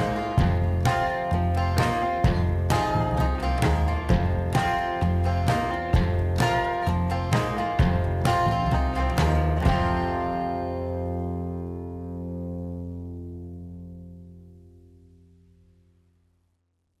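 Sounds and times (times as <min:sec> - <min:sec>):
acoustic guitar strums ringing: 0:00.0 - 0:14.4.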